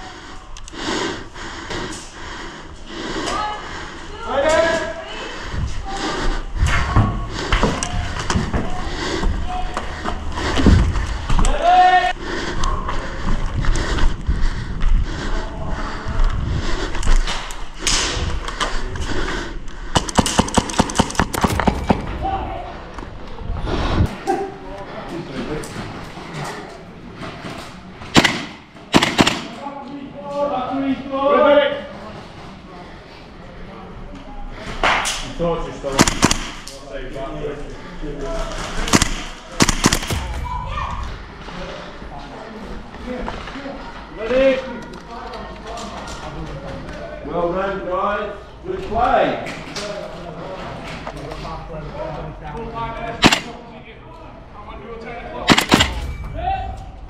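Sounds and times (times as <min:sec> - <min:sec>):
thuds and knocks of movement: 0:10.0 - 0:11.5
rapid airsoft gunfire: 0:20.0 - 0:22.1, 0:28.1 - 0:29.6, 0:36.0 - 0:36.7, 0:38.8 - 0:40.8, 0:53.2 - 0:53.6, 0:55.5 - 0:56.0
people shouting: 0:21.9 - 0:23.4, 0:40.1 - 0:41.4.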